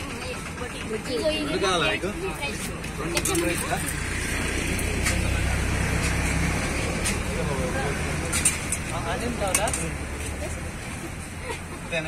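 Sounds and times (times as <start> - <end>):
background chatter: 0.0 - 12.0
passing vehicle rumble: 0.0 - 12.0.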